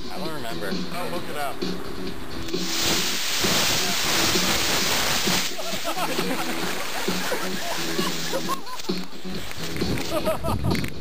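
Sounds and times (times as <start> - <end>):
background music: 0.0 - 11.0
rocket motors rushing hiss: 2.5 - 8.8.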